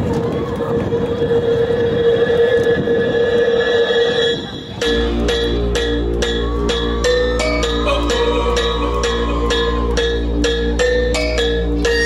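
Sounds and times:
rumbling train-like noise: 0.0 - 12.0
dance music: 0.7 - 12.0
droning tone: 0.7 - 12.0.

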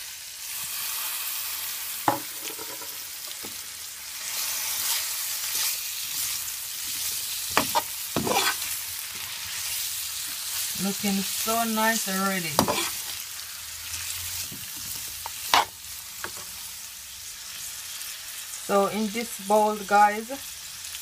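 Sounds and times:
food sizzling in a pot: 0.0 - 21.0
metal spoon scraping a pot: 7.5 - 8.7, 12.6 - 13.2, 15.2 - 16.5.

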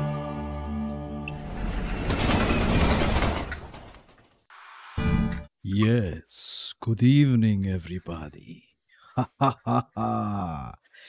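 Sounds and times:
passing train rumble: 1.3 - 4.2.

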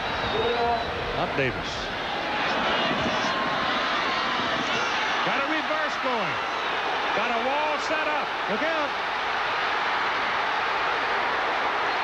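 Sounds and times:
stadium crowd din: 0.0 - 12.0.

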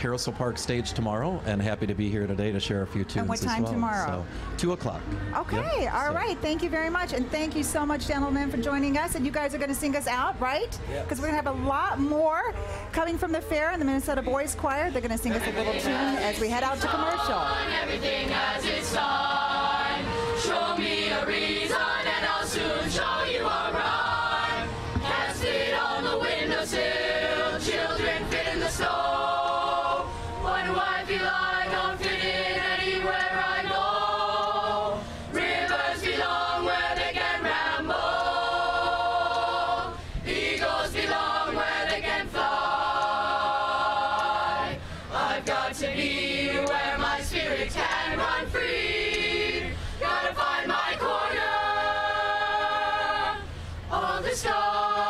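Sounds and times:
boys' choir singing: 15.2 - 55.0.

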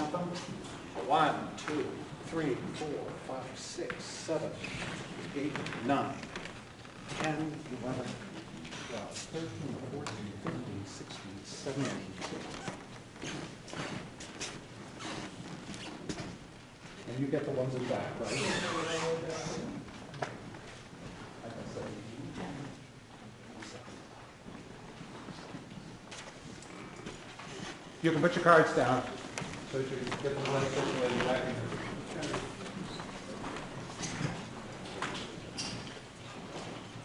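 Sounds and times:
man speaking: 0.0 - 6.4, 7.1 - 12.8, 17.0 - 19.8, 28.0 - 32.7
large hall room noise: 0.0 - 37.0.

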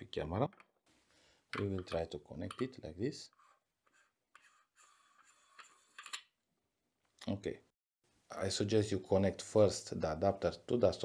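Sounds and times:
scratchy rubbing of metal: 3.2 - 6.1.

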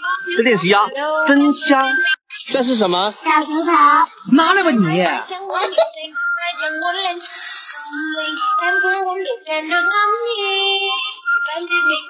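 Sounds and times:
high child-like singing voice: 3.2 - 4.1, 5.3 - 12.0.

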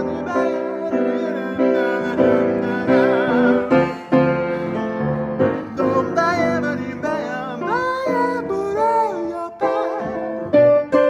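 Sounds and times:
grand piano playing jazz: 0.0 - 11.0.

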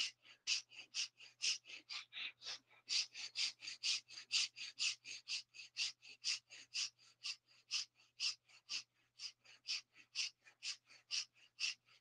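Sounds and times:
rapid nasal breathing: 0.0 - 12.0.

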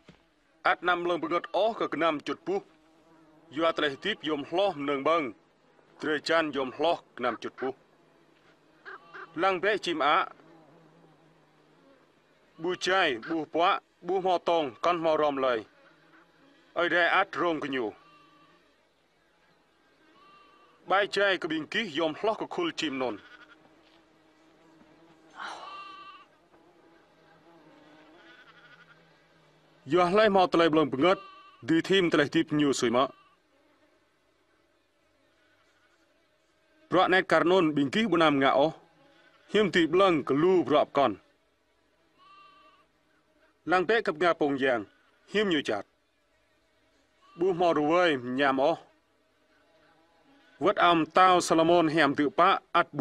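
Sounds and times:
man speaking: 3.6 - 5.3, 6.0 - 7.8, 9.4 - 10.3, 12.6 - 15.6, 16.8 - 17.9, 20.9 - 23.2, 29.9 - 33.1, 36.9 - 38.8, 39.6 - 41.2, 43.7 - 45.8, 47.4 - 48.8, 50.6 - 53.0.

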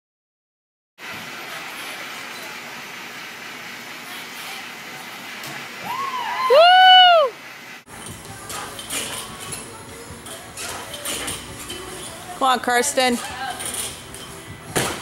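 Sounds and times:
high-pitched whoop: 5.8 - 7.4
gym background noise: 7.9 - 15.0.

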